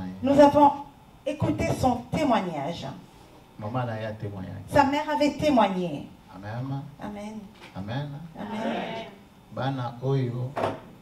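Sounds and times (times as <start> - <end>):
man talking: 9.5 - 10.6.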